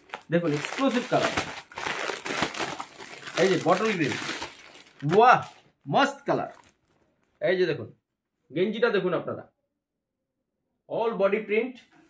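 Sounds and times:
plastic packets crinkling: 0.0 - 7.1.

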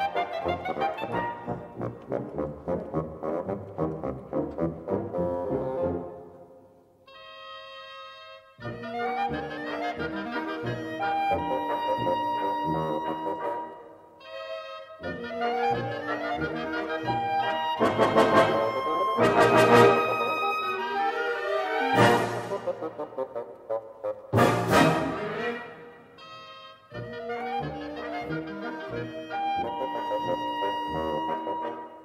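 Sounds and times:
military wind band playing: 0.0 - 6.3, 7.1 - 32.0.

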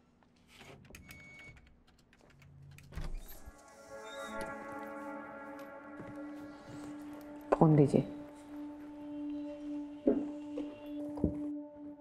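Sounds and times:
music: 3.0 - 12.0.

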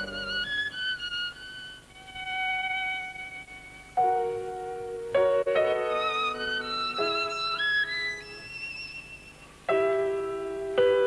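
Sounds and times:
solo violin melody: 0.0 - 10.9.

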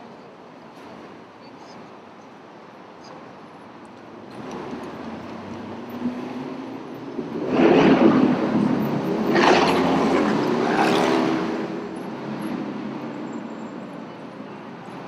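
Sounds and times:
background street traffic: 0.0 - 15.0
vehicle engine passing: 4.3 - 13.1.

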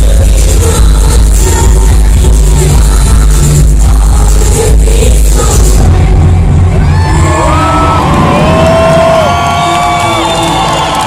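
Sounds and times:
live dance-pop music: 0.0 - 11.0.

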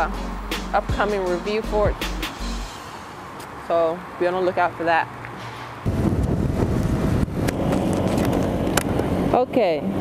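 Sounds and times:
wind buffeting microphone: 5.8 - 10.0.

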